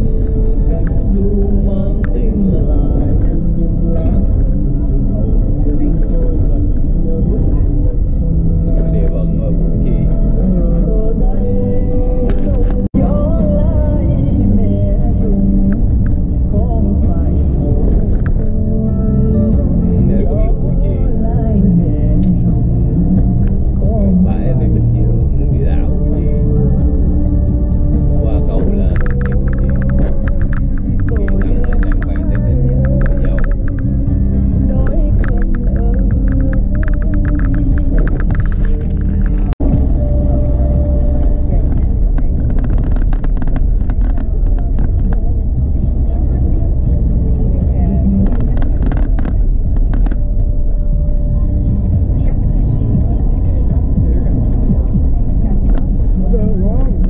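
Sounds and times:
car engine and tyre rumble: 0.0 - 57.0
music with vocals: 0.0 - 57.0.

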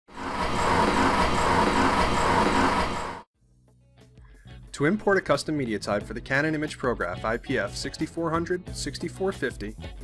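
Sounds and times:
printer whirring with rhythmic pulse: 0.1 - 3.2.

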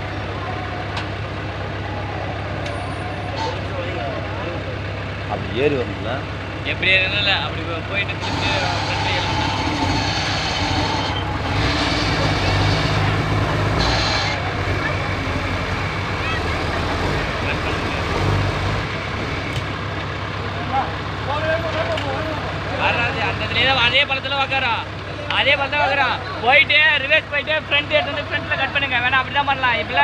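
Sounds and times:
diesel truck engine under load: 0.0 - 30.0
men calling out: 1.6 - 6.4.

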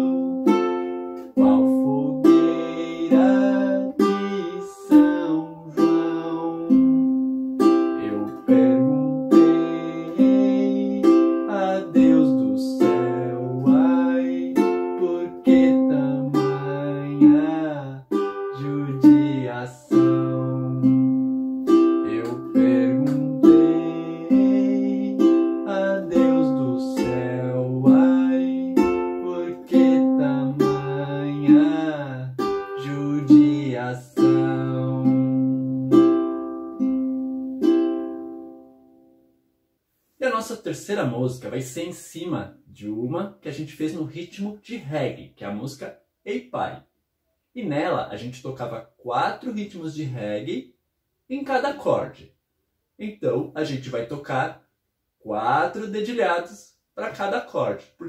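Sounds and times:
man singing: 0.0 - 0.3, 1.2 - 6.9, 8.0 - 21.0, 22.0 - 35.8
ukulele fingerpicked: 0.0 - 39.0.

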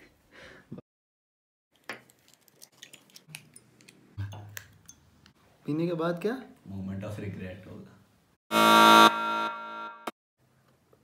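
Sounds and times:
harsh buzzer: 8.5 - 10.2.

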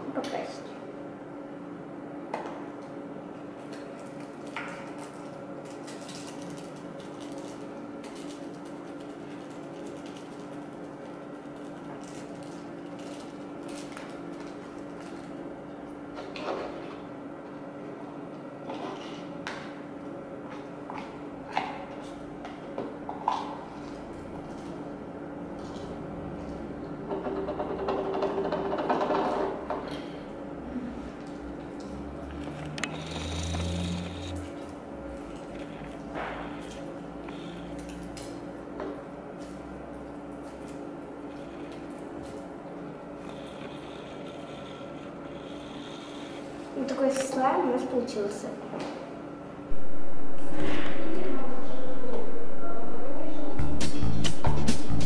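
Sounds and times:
room hum: 0.0 - 55.0.

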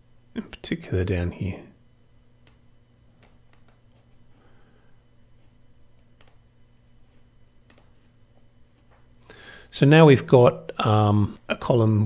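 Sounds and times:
low electrical hum: 0.0 - 12.0
mouse buttons clicking: 3.2 - 3.8, 6.2 - 6.4, 7.7 - 7.9.

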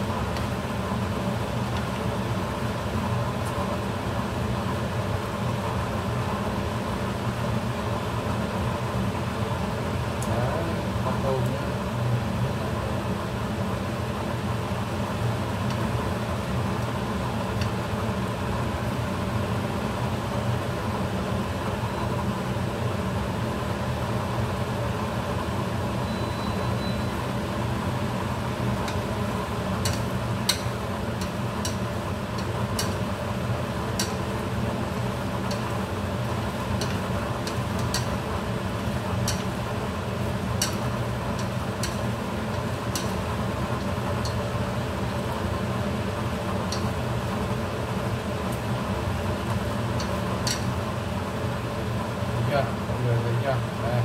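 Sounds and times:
range hood fan humming: 0.0 - 54.0
shrimp frying in a pan: 26.6 - 53.8
chopsticks stirring: 33.8 - 39.6, 40.4 - 44.4.

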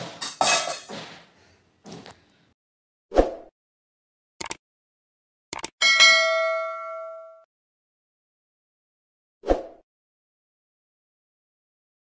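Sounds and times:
bell chime ringing: 5.8 - 7.5.

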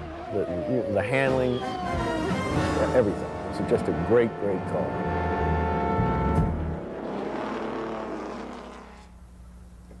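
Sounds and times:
racing car engine at speed: 0.0 - 9.1.

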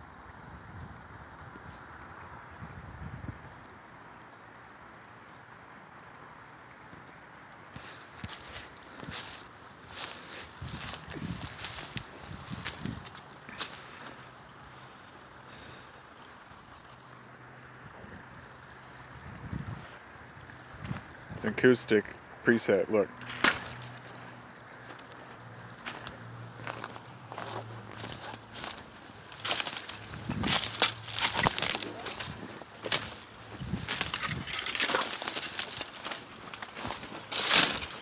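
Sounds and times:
faint outdoor hiss: 0.0 - 38.0
footsteps on dry leaves: 7.7 - 14.3, 23.2 - 38.0.

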